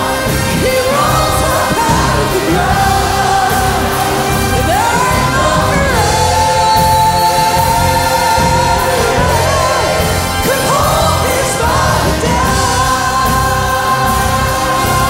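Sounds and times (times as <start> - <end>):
group singing into microphones: 0.0 - 15.0
live gospel band: 0.0 - 15.0.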